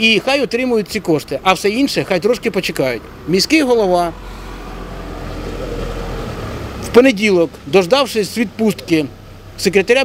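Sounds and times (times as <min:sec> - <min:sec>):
passing motor vehicle rumble: 0:00.0 - 0:10.0.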